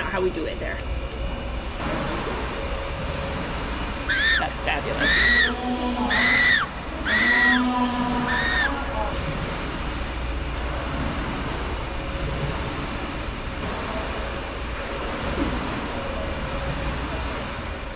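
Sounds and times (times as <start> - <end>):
steady background hum: 0.0 - 17.9.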